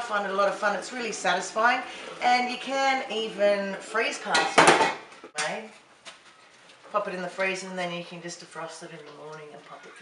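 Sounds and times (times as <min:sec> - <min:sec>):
woman speaking: 0:00.0 - 0:04.7, 0:05.4 - 0:05.8, 0:06.9 - 0:10.0.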